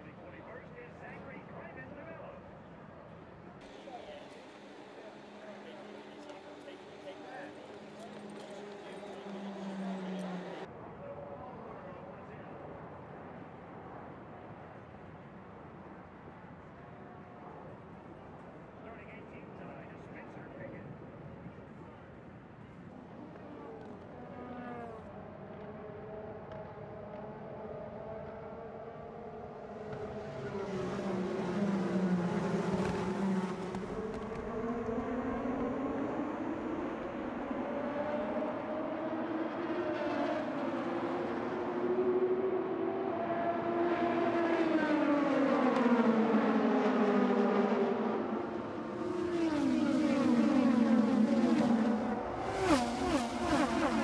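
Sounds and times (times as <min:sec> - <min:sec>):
race car engines passing: 0:00.0 - 0:10.8, 0:22.4 - 0:54.0.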